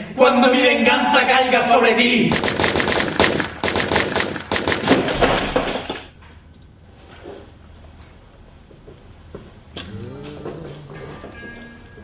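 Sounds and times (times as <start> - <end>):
handguns firing rapidly: 2.3 - 5.9.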